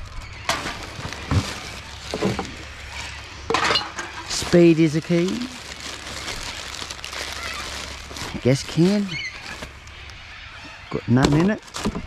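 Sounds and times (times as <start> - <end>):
plastic bag rustling: 0.0 - 3.3, 4.0 - 12.0.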